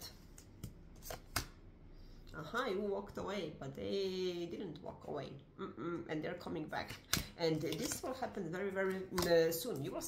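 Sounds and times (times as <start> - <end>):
cards clicking: 0.3 - 1.6.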